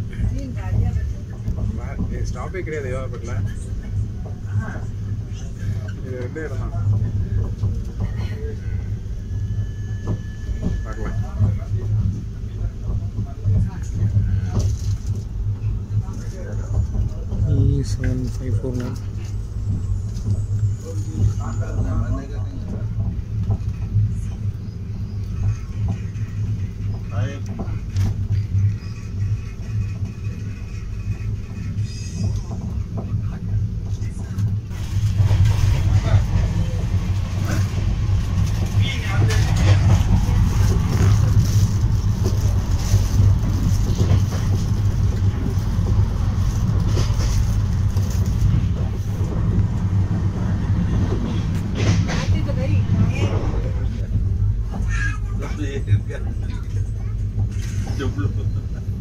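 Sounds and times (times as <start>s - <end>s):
train coach rumble: 0.0s - 59.0s.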